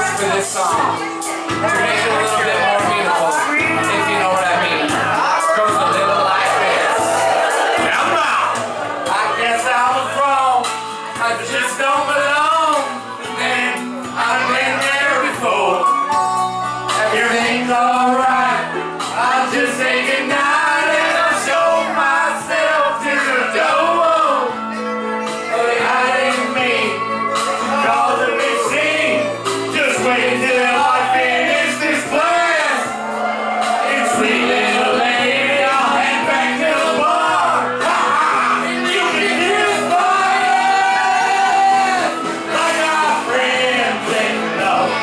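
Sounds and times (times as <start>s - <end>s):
backing track music: 0.0s - 45.0s
crowd in a bar: 0.0s - 45.0s
man singing into microphone: 9.2s - 16.0s, 16.9s - 24.6s, 25.5s - 32.9s, 33.8s - 45.0s.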